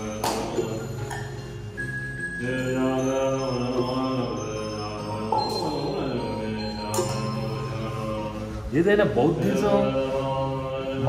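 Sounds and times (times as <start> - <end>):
low voice chanting: 0.0 - 1.1, 2.4 - 11.0
music: 0.0 - 11.0.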